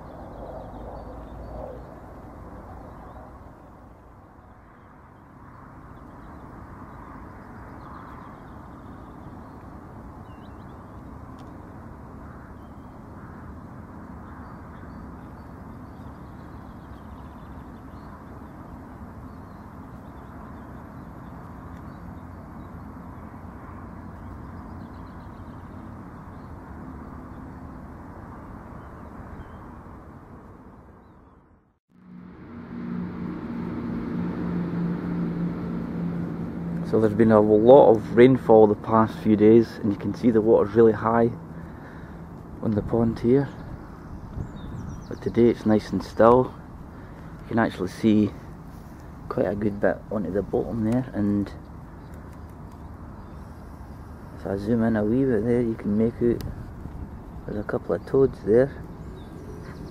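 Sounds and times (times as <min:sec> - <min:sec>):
distant low rumble: 0:00.0 - 0:59.9
steady low hum: 0:31.9 - 0:59.9.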